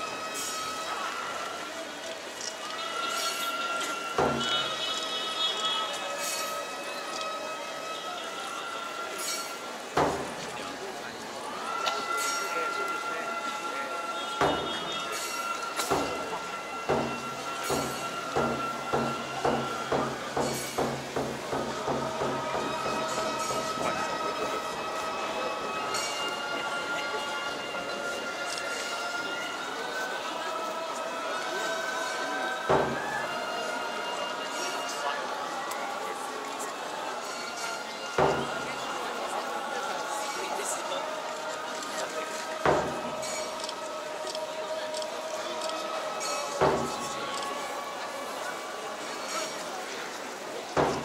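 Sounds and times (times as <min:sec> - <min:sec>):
murmur of large crowd: 0:00.0 - 0:51.0
reedy wind instruments: 0:00.0 - 0:51.0.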